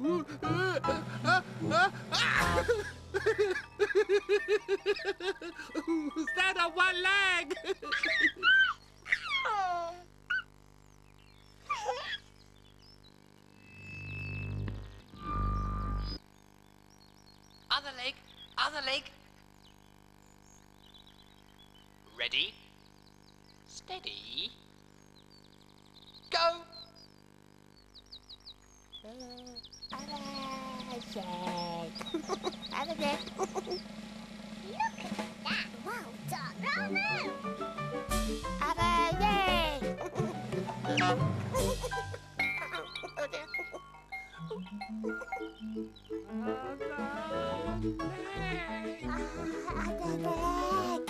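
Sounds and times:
steady low hum: 0.0 - 51.0
birds chirping: 2.2 - 51.0
baby giggling: 7.5 - 10.5, 11.6 - 12.3, 32.1 - 33.8, 38.6 - 44.0, 45.0 - 45.8, 46.5 - 51.0
warbling bird calls: 19.3 - 35.8.

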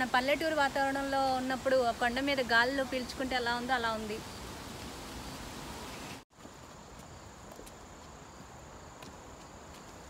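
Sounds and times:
footsteps on dirt trail: 6.3 - 10.0.

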